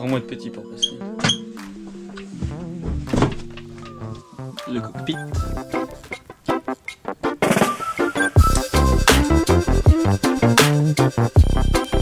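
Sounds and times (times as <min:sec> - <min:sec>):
background music held notes: 0:00.0 - 0:12.0.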